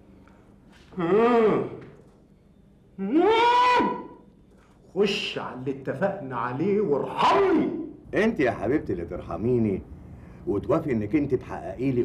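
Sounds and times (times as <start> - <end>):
man humming: 0.9 - 1.8.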